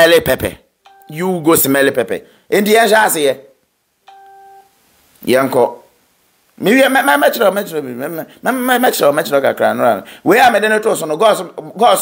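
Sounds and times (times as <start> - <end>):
faint beep: 0.8 - 1.4, 4.1 - 4.8.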